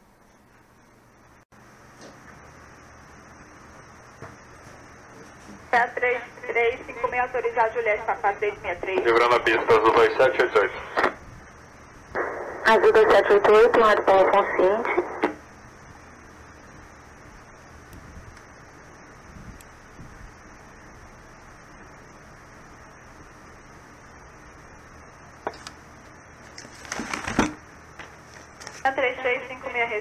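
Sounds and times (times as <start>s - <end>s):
radio channel hiss: 5.2s - 27.6s, 28.3s - 30.0s
radio click: 10.4s - 11.2s, 12.1s - 15.4s.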